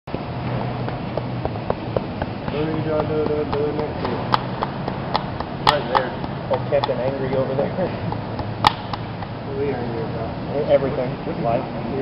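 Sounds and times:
car engine idling: 0.3s - 10.7s.

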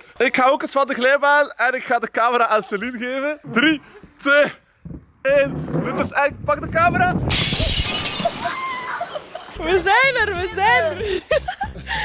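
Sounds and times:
glass shattering: 7.3s - 9.1s.

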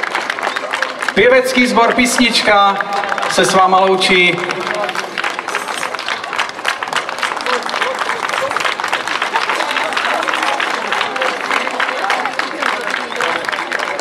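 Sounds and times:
audience applauding: 0.0s - 14.0s
faint voices: 0.0s - 14.0s.

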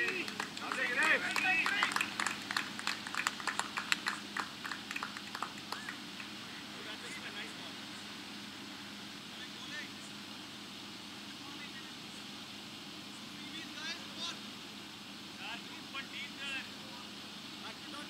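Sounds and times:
hand clapping: 0.0s - 6.3s
steady low hum: 0.0s - 18.0s.

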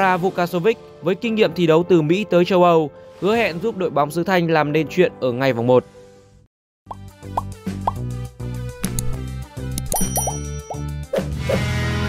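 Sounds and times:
bubbly pop sound effects: 6.9s - 8.0s.

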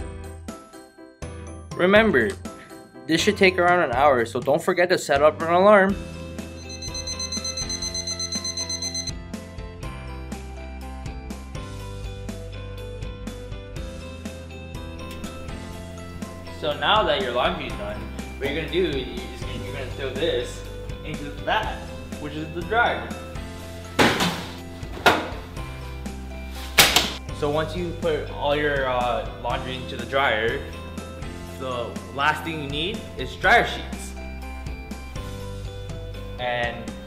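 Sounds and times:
background music: 0.0s - 37.0s
high-pitched electronic alarm beeping: 6.6s - 9.1s
wet laundry thuds: 24.0s - 25.3s.

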